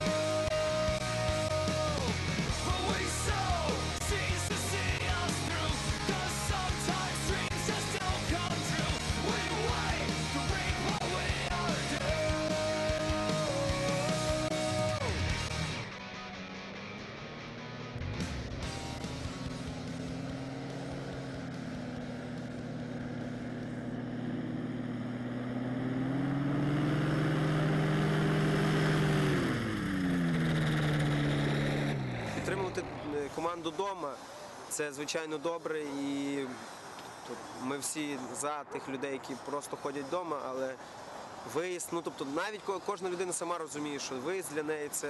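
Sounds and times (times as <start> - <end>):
paramotor engine running: 0.0 - 16.0, 16.9 - 34.7
rock music: 0.0 - 24.4.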